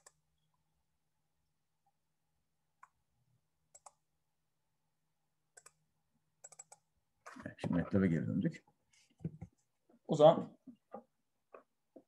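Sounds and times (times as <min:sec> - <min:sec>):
computer mouse clicks: 0:00.0 - 0:00.2, 0:03.7 - 0:04.0, 0:05.5 - 0:05.8, 0:06.4 - 0:06.9.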